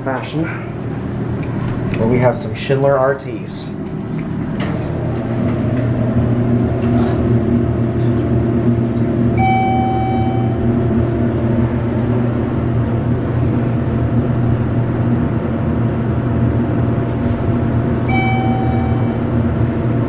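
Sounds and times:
elevator hydraulic pump hum: 3.7 - 20.0
elevator chime: 9.4 - 11.0, 18.0 - 19.8.

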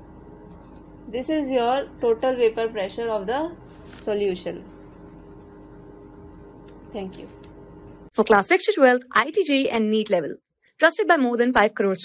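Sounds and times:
low background hum: 0.0 - 10.4
person speaking: 1.1 - 5.9, 6.8 - 8.0.

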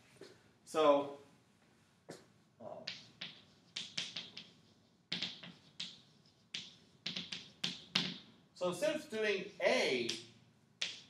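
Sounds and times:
chalk tapping and scraping on blackboard: 2.1 - 8.4, 10.0 - 11.0.

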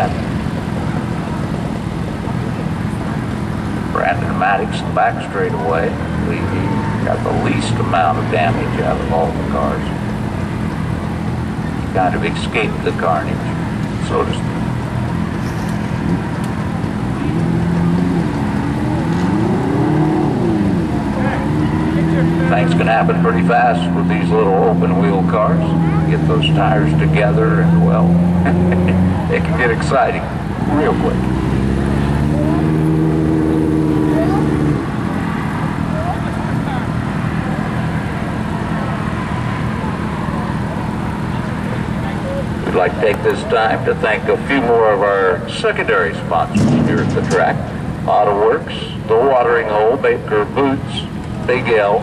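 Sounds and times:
track background noise: 0.0 - 52.0
vehicle engines idling: 0.0 - 52.0
engine revving: 3.6 - 52.0.

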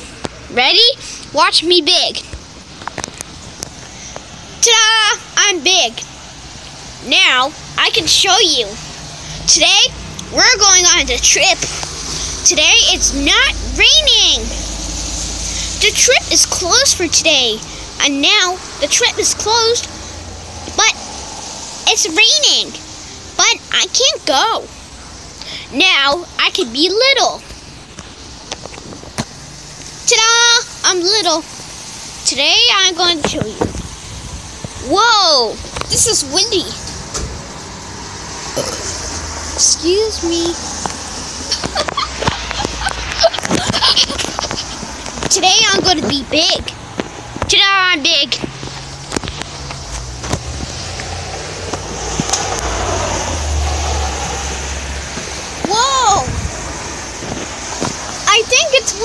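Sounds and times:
outdoor background noise: 0.0 - 59.0
child exclaiming: 0.5 - 2.2, 4.6 - 6.1, 7.0 - 8.8, 9.4 - 14.6, 15.5 - 19.9, 21.9 - 22.8, 23.4 - 24.7, 30.1 - 31.5, 34.8 - 36.8, 39.6 - 40.6, 55.6 - 56.4, 58.3 - 59.0
wind buffeting microphone: 33.2 - 34.9, 48.3 - 58.9.

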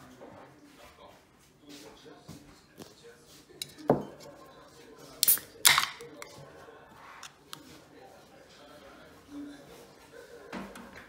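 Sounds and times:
beer can opening with hiss: 5.2 - 6.0.

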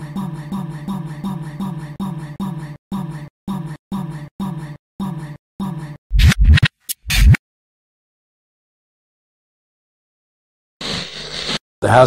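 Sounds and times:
vinyl record scratches: 6.2 - 7.4.

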